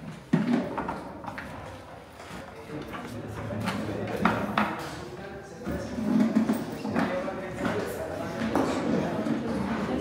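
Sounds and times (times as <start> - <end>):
crowd talking: 2.4 - 10.0.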